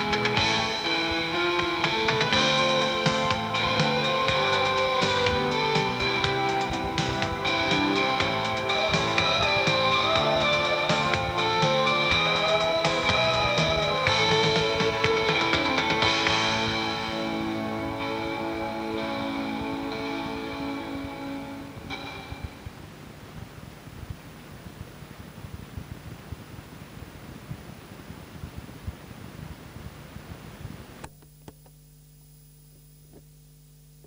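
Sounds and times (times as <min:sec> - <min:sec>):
song on cassette: 0:00.0 - 0:31.8
low steady hum: 0:00.0 - 0:34.0
tape hiss: 0:00.0 - 0:34.0.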